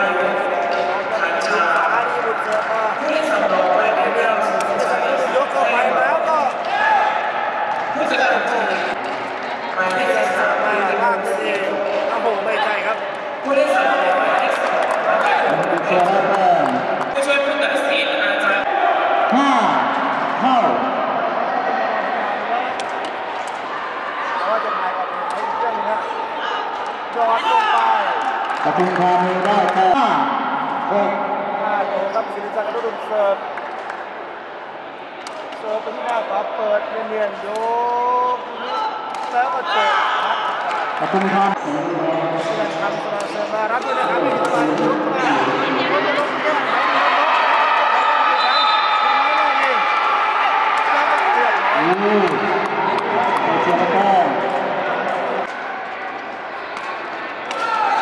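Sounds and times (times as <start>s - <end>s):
spectators' voices: 0.0s - 58.0s
players shouting: 17.1s - 29.0s, 43.0s - 58.0s.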